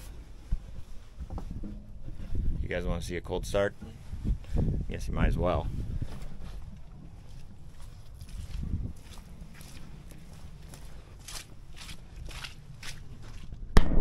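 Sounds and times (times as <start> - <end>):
steady low rumble: 0.0 - 14.0
footsteps on dry brush: 5.7 - 13.6
sharp loud knock: 13.8 - 14.0.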